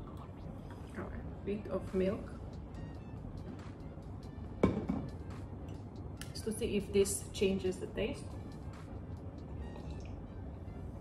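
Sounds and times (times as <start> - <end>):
quiet background music: 0.0 - 11.0
metal jug knocking on countertop: 4.6 - 5.2.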